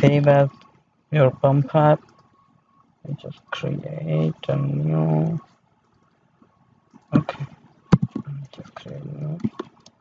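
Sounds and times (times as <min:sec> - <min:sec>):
man's drawn-out hesitation sound: 0:00.0 - 0:02.1, 0:03.0 - 0:05.5, 0:07.0 - 0:09.6
computer mouse clicks: 0:02.0 - 0:02.4, 0:05.2 - 0:08.5, 0:09.2 - 0:10.0.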